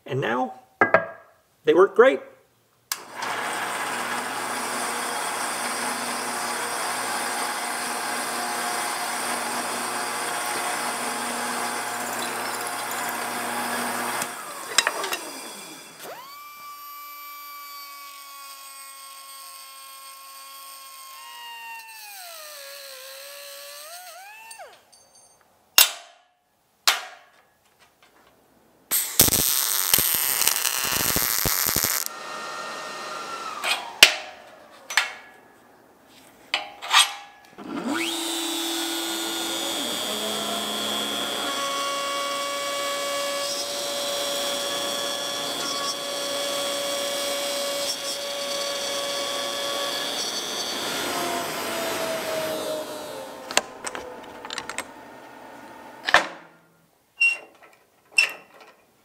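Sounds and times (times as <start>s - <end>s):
sharp knocks: 0.8s - 1.4s
power tool boring into plywood: 3.0s - 24.8s, 29.0s - 34.0s, 37.6s - 54.9s
angle grinder cutting steel: 3.0s - 24.9s, 28.9s - 34.0s, 37.6s - 56.0s
loud noisy burst: 28.9s - 32.2s.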